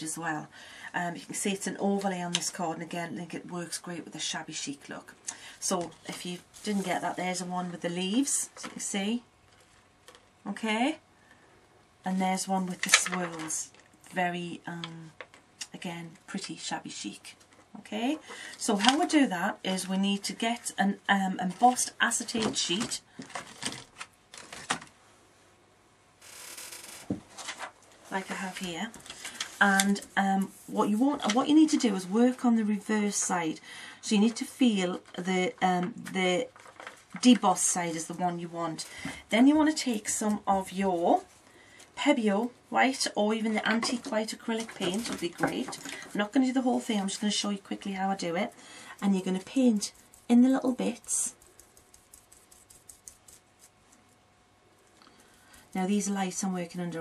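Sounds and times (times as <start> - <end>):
rustle of craft materials: 5.6 - 10.4, 12.2 - 14.1, 26.5 - 33.4, 34.6 - 42.0, 43.0 - 56.0
paintbrush tapping and scratching: 46.8 - 54.1.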